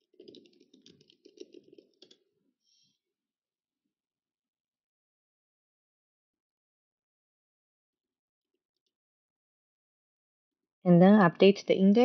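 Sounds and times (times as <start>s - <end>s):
computer keyboard key clicks: 0.2s - 2.2s.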